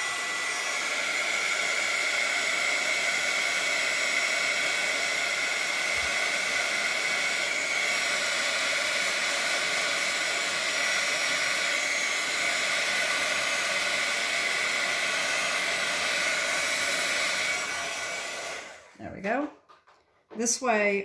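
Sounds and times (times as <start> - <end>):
heat tool blowing air: 0.0 - 19.0.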